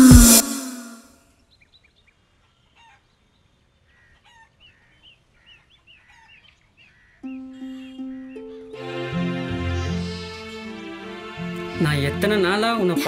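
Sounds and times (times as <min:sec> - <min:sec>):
faint bird chirps: 0:00.3 - 0:08.7
soft background music: 0:07.2 - 0:13.0.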